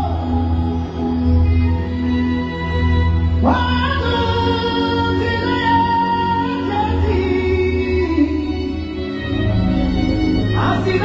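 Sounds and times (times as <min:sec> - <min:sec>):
gospel singing: 0:00.0 - 0:09.5, 0:10.4 - 0:11.0
instrumental backing: 0:00.0 - 0:11.0.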